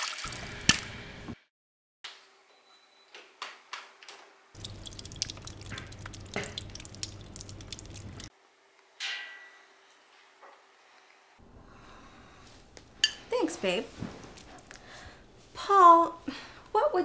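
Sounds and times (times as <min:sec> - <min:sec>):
water dripping onto tile floor: 0:04.6 - 0:08.3.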